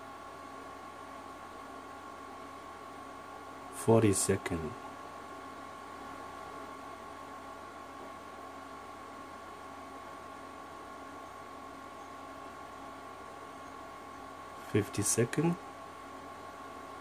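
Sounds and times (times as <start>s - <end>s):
steady hiss: 9.8s - 17.0s.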